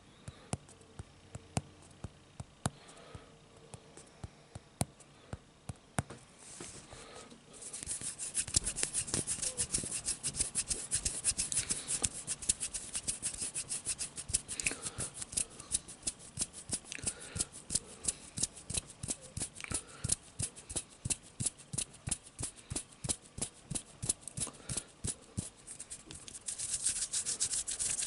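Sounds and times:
fingertips scratching microphone: 7.7 - 14.5.

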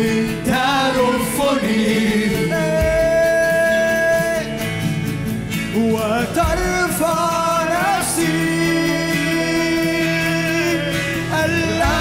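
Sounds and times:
live band playing: 0.0 - 12.0
man singing: 0.0 - 12.0.

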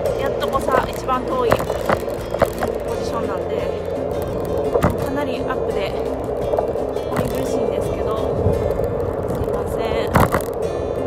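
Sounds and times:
background music: 0.0 - 11.0
bicycle wheels rolling on pavement: 0.0 - 11.0
wind on microphone: 0.0 - 11.0.

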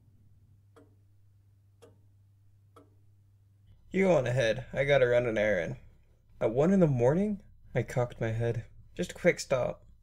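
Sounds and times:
low steady hum: 0.0 - 10.0
clock ticking faintly: 0.6 - 3.8.

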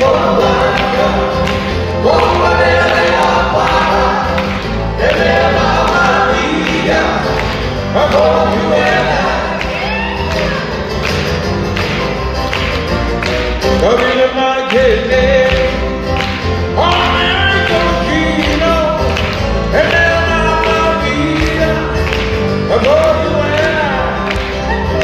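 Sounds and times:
lead vocal singing: 0.0 - 10.8, 13.8 - 25.0
acoustic guitars: 0.0 - 25.0
keyboard: 0.0 - 25.0.

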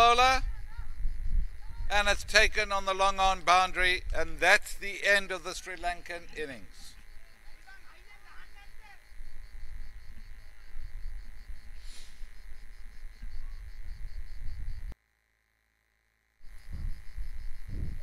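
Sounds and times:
steady low rumble: 0.0 - 7.7.

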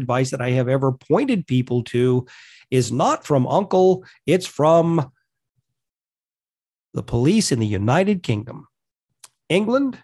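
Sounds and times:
man speaking: 0.0 - 5.2, 7.0 - 10.0.

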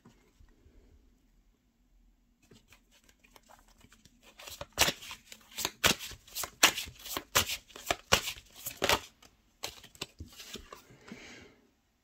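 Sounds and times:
cards being shuffled: 2.5 - 10.8.

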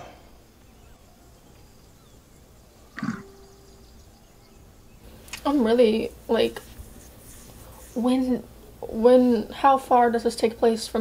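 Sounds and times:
faint steady held tone: 0.0 - 5.1
ape grunt: 3.0 - 3.4.

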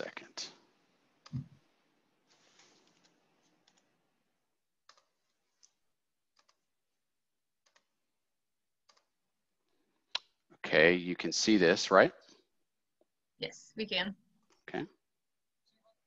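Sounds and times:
computer clicks: 4.9 - 5.1, 6.3 - 6.6, 7.6 - 7.9, 8.9 - 9.1.

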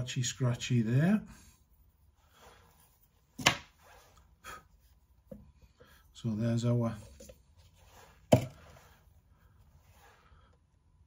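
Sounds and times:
faint rustling handling noise: 0.4 - 11.0.

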